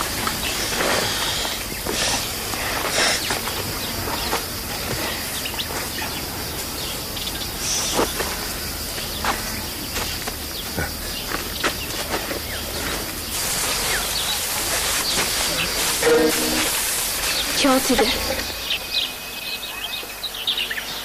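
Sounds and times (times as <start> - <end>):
steady hiss: 0.0 - 19.7.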